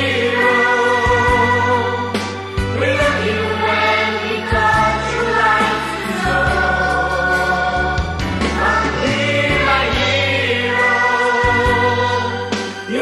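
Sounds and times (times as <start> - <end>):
backing band with bass line: 0.0 - 13.0.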